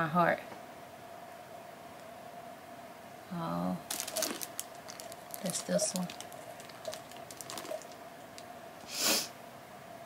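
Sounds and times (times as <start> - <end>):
small objects clicking and tapping: 3.9 - 8.5
short sharp sniff: 8.8 - 9.3.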